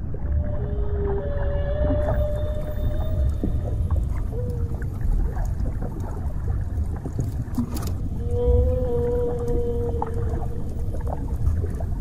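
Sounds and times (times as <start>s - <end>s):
low rumble of moving water: 0.0s - 12.0s
dolphin whistle: 0.4s - 3.8s.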